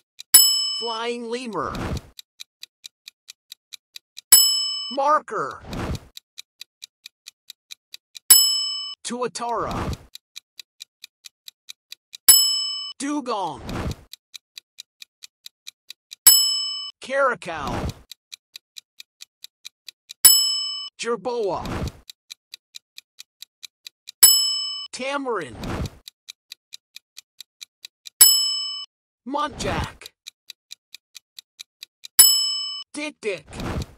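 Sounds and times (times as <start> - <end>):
quick clock ticks: 0.0 - 33.9
bell ding: 32.2 - 32.8.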